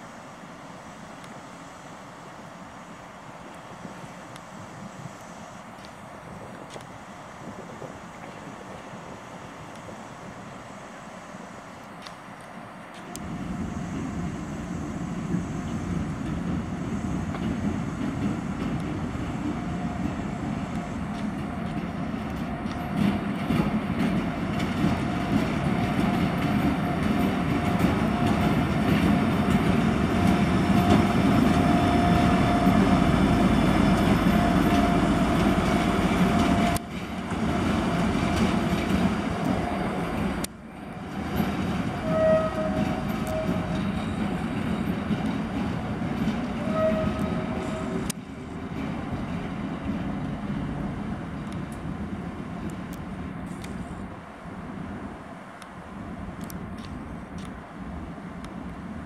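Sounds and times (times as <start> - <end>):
diesel locomotive engine drone: 0.0 - 59.0
locomotive horn toots: 41.9 - 44.2, 46.6 - 48.1.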